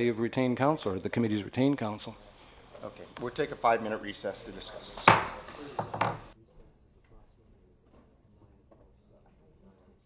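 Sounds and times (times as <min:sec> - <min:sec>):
knocks on a table: 0:05.0 - 0:06.3.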